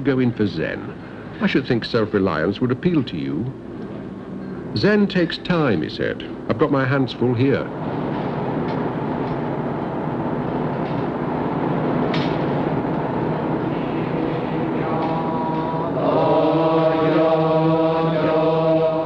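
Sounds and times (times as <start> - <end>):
congregation chanting: 13.6 - 19.0.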